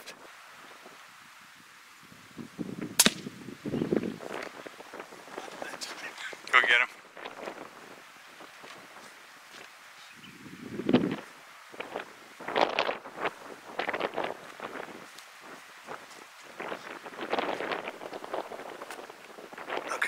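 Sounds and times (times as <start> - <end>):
footsteps in dry scrub: 7.1 - 10.2, 11.0 - 19.5.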